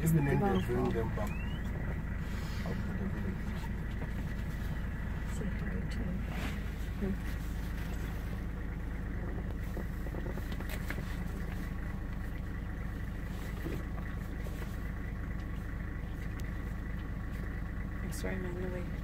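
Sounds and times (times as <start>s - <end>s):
vehicle engine droning: 0.0s - 19.0s.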